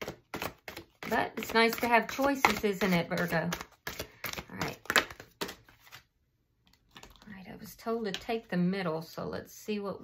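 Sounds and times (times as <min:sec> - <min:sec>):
cards being shuffled: 0:00.0 - 0:07.3
person speaking: 0:01.0 - 0:05.1.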